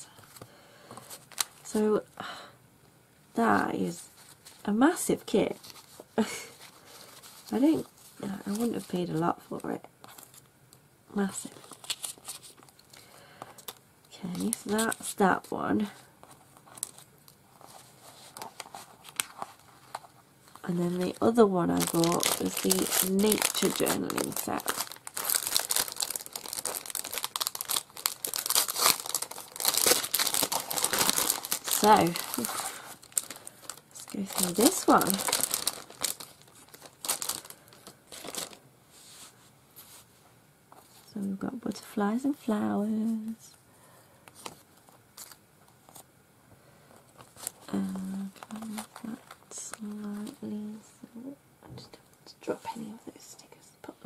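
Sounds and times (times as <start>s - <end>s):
plastic bag crinkling: 11.4s - 16.0s, 16.6s - 38.6s, 47.0s - 50.5s
woman whispering: 47.7s - 54.0s.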